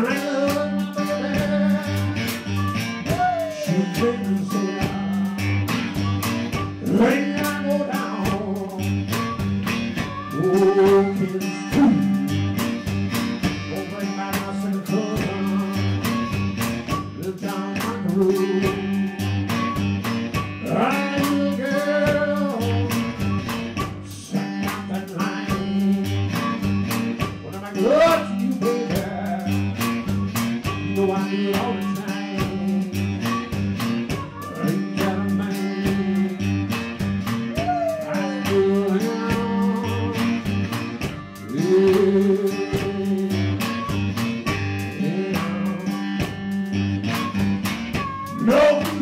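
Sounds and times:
blues band playing: 0:00.0 - 0:49.0
guitar with bent notes: 0:00.0 - 0:49.0.

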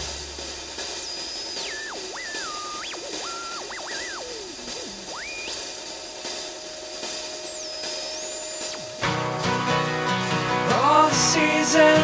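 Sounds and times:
steady hiss: 0:00.0 - 0:12.0
synthesizer whistling tone sweeping: 0:00.8 - 0:09.8
held lower synth tone: 0:01.0 - 0:09.9.

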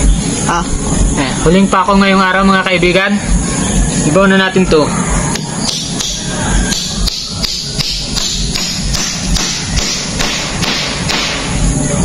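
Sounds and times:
hammer driving nail into wood: 0:05.7 - 0:11.5.

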